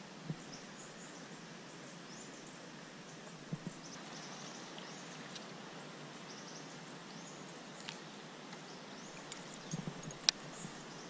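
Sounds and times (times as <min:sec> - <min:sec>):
faint outdoor hiss: 0:00.0 - 0:11.0
small birds chirping: 0:00.3 - 0:11.0.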